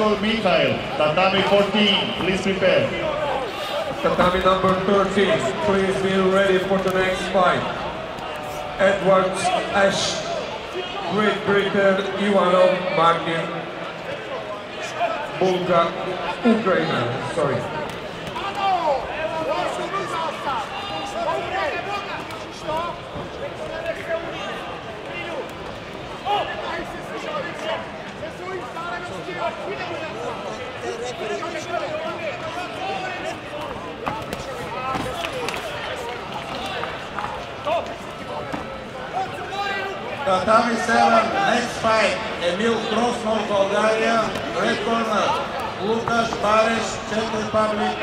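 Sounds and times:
din of crowd chatter: 0.0 - 48.0
many voices talking and calling: 0.0 - 48.0.

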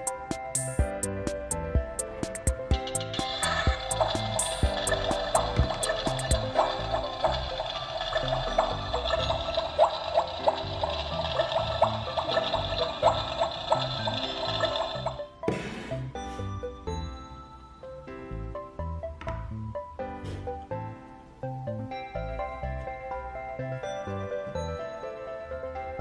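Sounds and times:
background music: 0.0 - 26.0
toy stove crackling hiss: 2.8 - 15.2.

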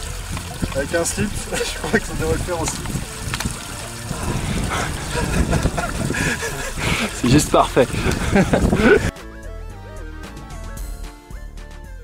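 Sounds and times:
stream trickling: 0.0 - 9.1
wind rumble on microphone: 2.2 - 9.1
man murmuring and laughing: 4.1 - 9.1.

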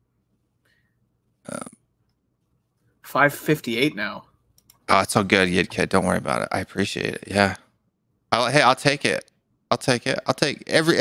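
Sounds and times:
man saying um: 1.5 - 1.7, 4.9 - 7.6.

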